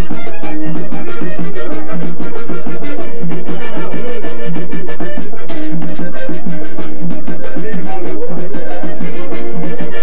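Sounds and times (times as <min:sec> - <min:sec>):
bass notes: 0:00.0 - 0:10.0
button accordion playing: 0:00.0 - 0:10.0
percussion: 0:00.0 - 0:10.0.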